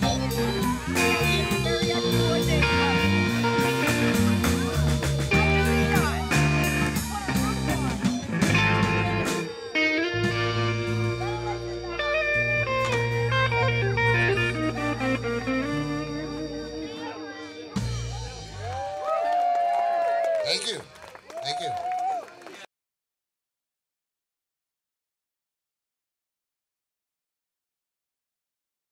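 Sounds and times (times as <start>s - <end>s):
live band playing: 0.0s - 19.2s.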